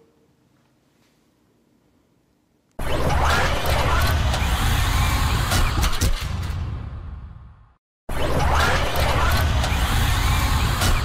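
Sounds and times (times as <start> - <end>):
loud rumbling whoosh: 2.8 - 7.8.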